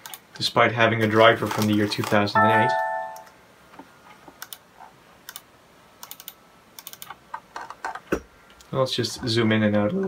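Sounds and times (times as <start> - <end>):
laptop keyboard typing: 4.4 - 4.6, 5.3 - 8.0.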